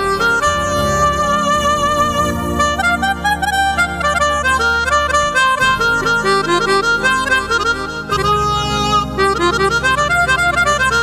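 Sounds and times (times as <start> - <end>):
sustained synthesizer backing: 0.0 - 11.0
synthesizer lead melody: 0.0 - 11.0.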